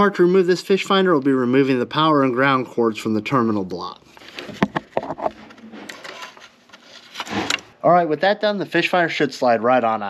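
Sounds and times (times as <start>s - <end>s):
wire connectors clicking and knocking: 4.3s - 7.7s.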